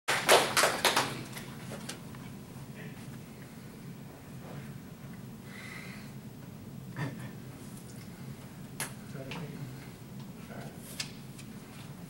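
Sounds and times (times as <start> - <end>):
sharp handclaps: 0.1 - 1.4.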